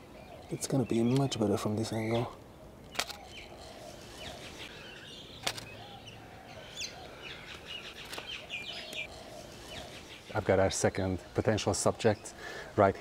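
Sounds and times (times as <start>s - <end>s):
small birds chirping: 0.0s - 13.0s
camera shutter click: 2.9s - 3.5s, 5.4s - 5.7s.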